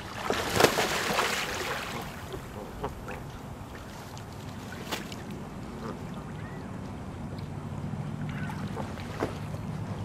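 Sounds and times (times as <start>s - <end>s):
water lapping with small splashes: 0.0s - 10.0s
steady low hum: 0.9s - 10.0s.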